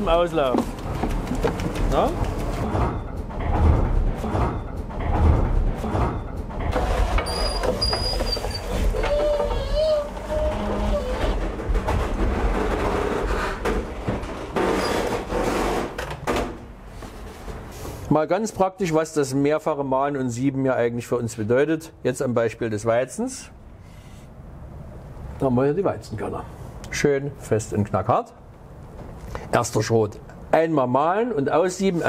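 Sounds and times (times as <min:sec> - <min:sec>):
wooden creaks and knocks: 0:00.4 - 0:16.7.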